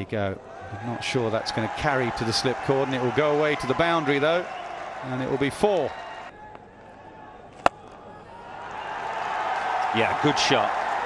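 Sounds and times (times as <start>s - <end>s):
crowd cheering: 0.4s - 11.0s
cricket bat hitting ball: 7.6s - 8.0s.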